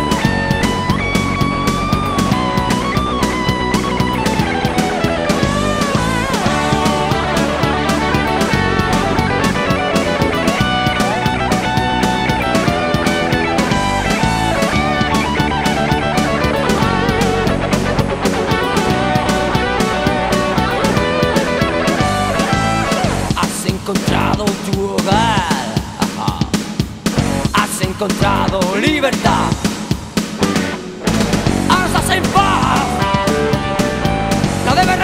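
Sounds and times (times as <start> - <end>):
heavy metal electric guitars: 0.0 - 24.5, 27.1 - 35.0
bass guitar: 0.0 - 35.0
drum kit: 0.0 - 35.0.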